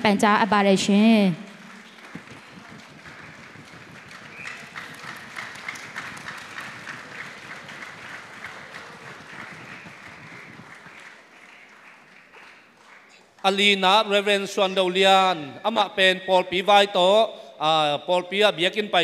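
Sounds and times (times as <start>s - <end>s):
audience applauding: 1.1s - 14.4s.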